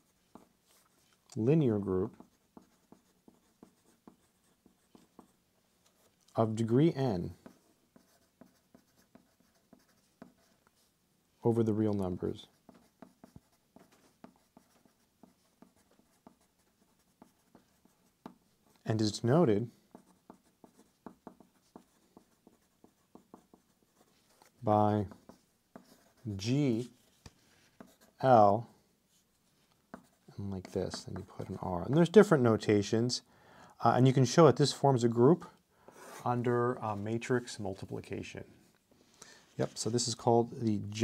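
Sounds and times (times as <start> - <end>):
pencil scratching on paper: 2.0 - 5.4, 7.3 - 10.9, 12.4 - 18.8, 19.7 - 28.3, 29.1 - 32.0, 35.9 - 36.3.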